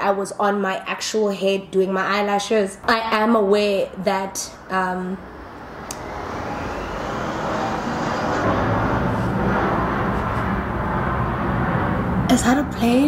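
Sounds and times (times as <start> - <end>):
loud engine rumble passing by: 3.7 - 13.0.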